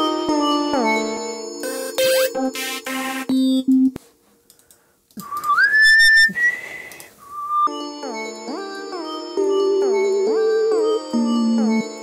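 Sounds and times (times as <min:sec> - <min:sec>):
whistle-like synth tone sliding up: 0:05.2 - 0:07.7.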